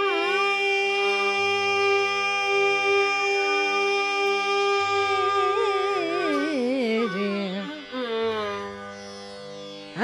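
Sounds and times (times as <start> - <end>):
long sustained vocal note: 0.0 - 9.0.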